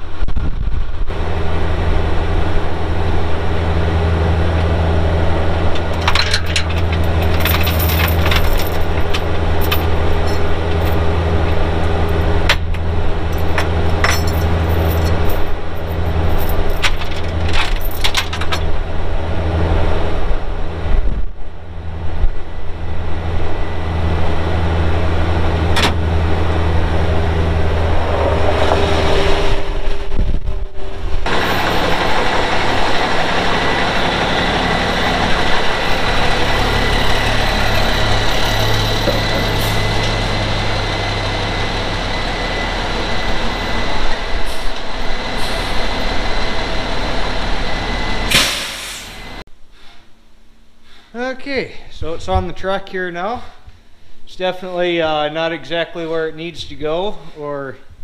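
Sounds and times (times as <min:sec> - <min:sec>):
diesel engine running: 0:00.6 - 0:49.5
metallic chain clinks: 0:05.9 - 0:11.1, 0:13.3 - 0:18.6
thin steady whine: 0:18.7 - 0:51.7.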